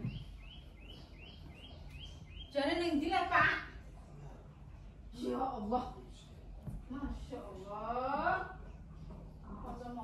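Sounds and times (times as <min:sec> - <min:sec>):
small bird chirping: 0:00.0 - 0:02.6
low background hum: 0:00.0 - 0:10.0.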